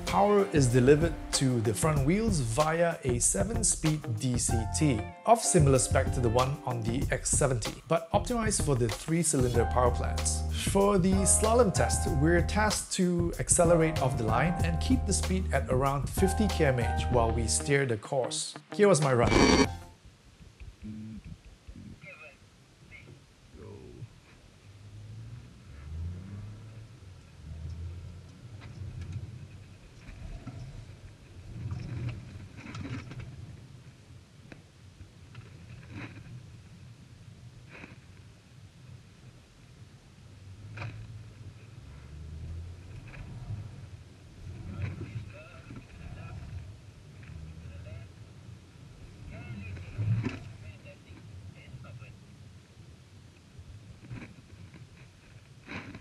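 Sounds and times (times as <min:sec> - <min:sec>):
car engine and road drone: 0:24.6 - 0:29.9, 0:40.2 - 0:44.7, 0:46.6 - 0:49.2.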